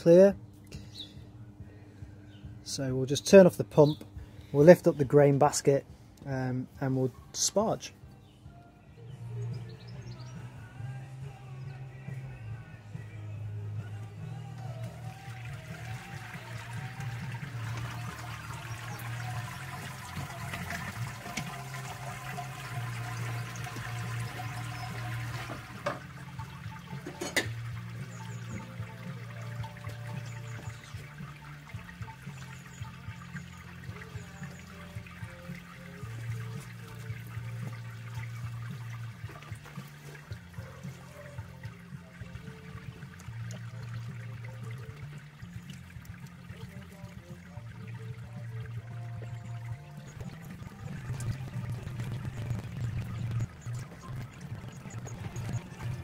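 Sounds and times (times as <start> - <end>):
liquid pouring into kettle: 14.2 - 56.0.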